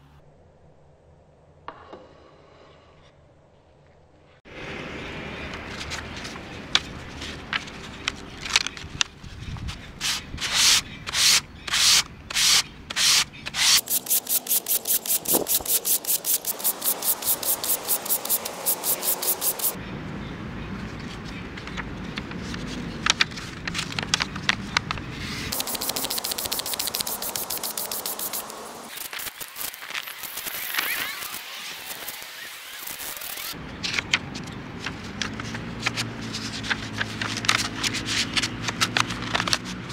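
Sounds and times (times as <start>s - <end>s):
sandpaper sanding metal sheet: 10.0s - 19.8s, 25.2s - 33.6s.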